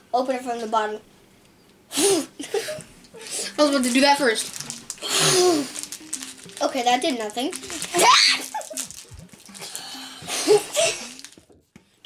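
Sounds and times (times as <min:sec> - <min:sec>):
background music: 0:01.8 - 0:11.7
boys laughing: 0:02.4 - 0:02.9, 0:07.9 - 0:08.9, 0:10.3 - 0:11.2.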